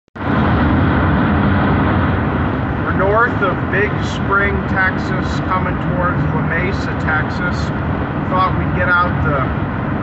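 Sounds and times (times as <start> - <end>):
vehicle road and wind noise: 0.2 - 10.0.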